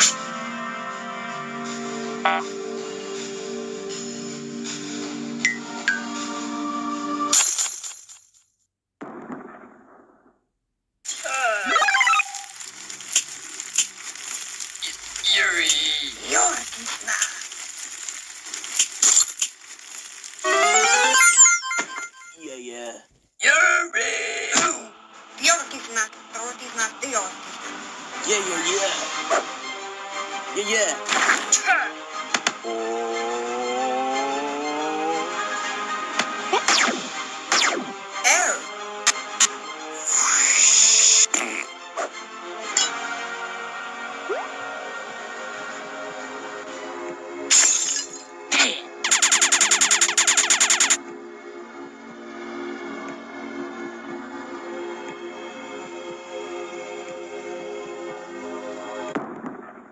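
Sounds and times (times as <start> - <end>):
sudden loud crash: 9.0 - 10.3
squeaky cartoon character vocalisations: 11.2 - 12.5.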